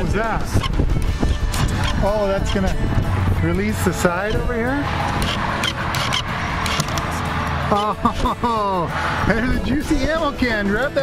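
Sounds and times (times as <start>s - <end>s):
steady rushing noise: 0.0s - 10.4s
wooden box clicks and knocks: 6.7s - 7.1s.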